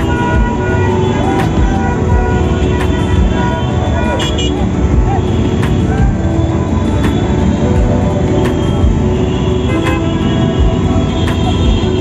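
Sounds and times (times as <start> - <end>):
car engines running: 0.0 - 12.0.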